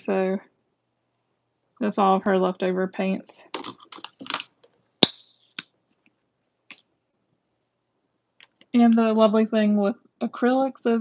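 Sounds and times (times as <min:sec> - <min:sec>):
plastic tube rustling: 0:03.5 - 0:04.8.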